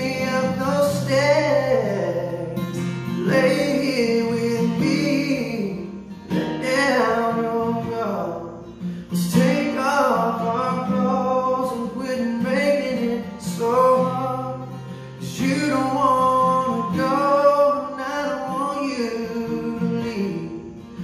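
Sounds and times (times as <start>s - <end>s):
man singing slow song: 0.0s - 21.0s
strummed acoustic guitar: 0.0s - 21.0s.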